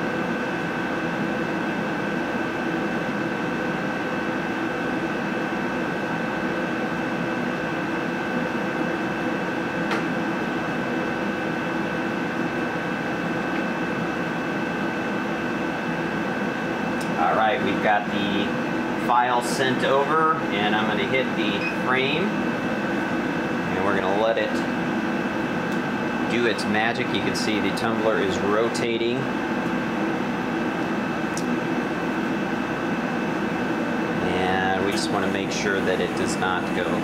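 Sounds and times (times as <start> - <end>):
laser engraver equipment humming: 0.0 - 37.0
man's voice: 17.2 - 22.3, 34.2 - 37.0.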